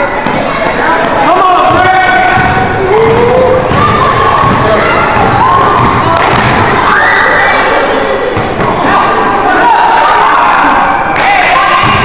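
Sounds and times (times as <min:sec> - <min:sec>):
spectators cheering and shouting: 0:00.0 - 0:12.0.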